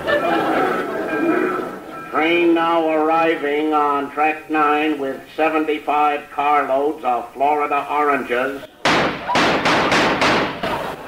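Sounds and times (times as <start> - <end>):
train rushing through station: 0.0 - 5.7.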